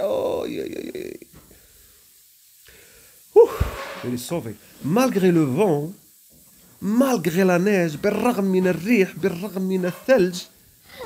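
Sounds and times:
person breathy exclamation: 0:03.3 - 0:03.8
breath thump on microphone: 0:03.5 - 0:04.0.

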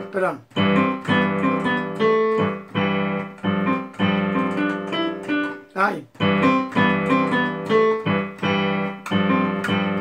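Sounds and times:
piano chord accompaniment: 0:00.0 - 0:10.0.

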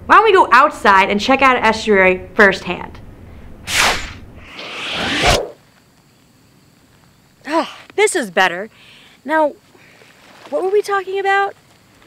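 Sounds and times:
whoosh transition swishes: 0:03.7 - 0:05.6.

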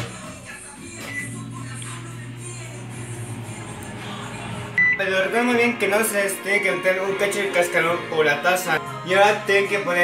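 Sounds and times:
microwave oven humming: 0:00.8 - 0:05.1
short electronic beep: 0:04.8 - 0:05.1.

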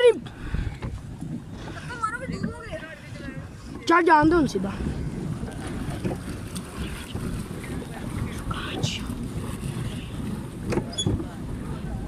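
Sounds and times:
water washing around boat: 0:00.0 - 0:12.0
wind rumbling on microphone: 0:00.0 - 0:12.0.

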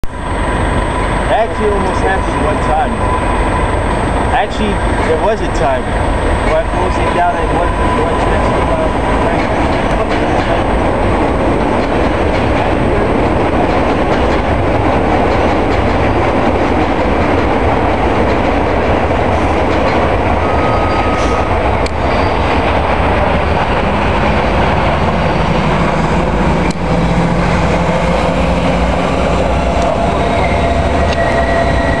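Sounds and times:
train wheels rumbling on steel track: 0:00.0 - 0:32.0.

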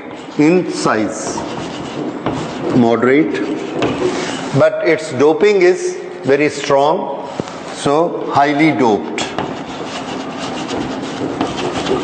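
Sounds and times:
chalk scratching on chalkboard: 0:00.0 - 0:04.6, 0:08.7 - 0:12.0.

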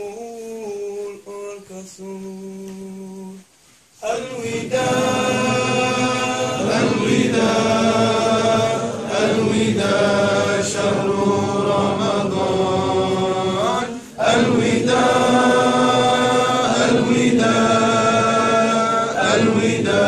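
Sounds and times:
male voices chanting: 0:04.0 - 0:20.0.

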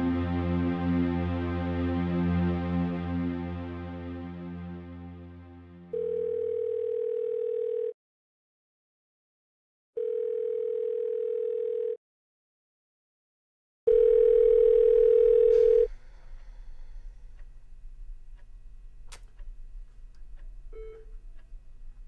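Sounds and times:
telephone ringing tone: 0:05.9 - 0:08.0, 0:10.0 - 0:12.0, 0:13.9 - 0:15.9.

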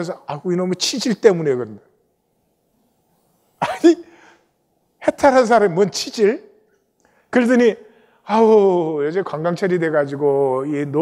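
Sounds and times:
man clearing his throat: 0:03.6 - 0:04.2.

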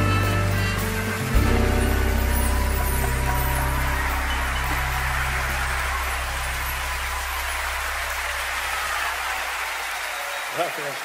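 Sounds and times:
live pop ballad chord: 0:00.0 - 0:09.6
audience applause: 0:00.6 - 0:11.0.

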